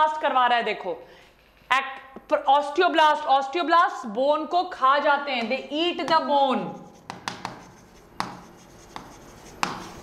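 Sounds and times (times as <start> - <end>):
pen writing on a screen: 6.7 - 10.0
sharp pen taps: 7.1 - 9.9.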